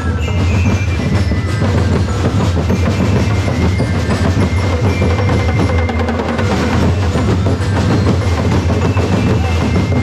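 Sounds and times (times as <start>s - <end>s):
massed drums playing fast beat: 0.0s - 10.0s.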